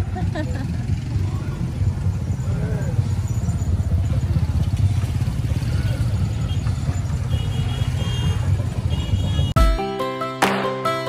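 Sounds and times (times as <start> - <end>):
motorcycle engines rumbling: 0.0 - 9.6.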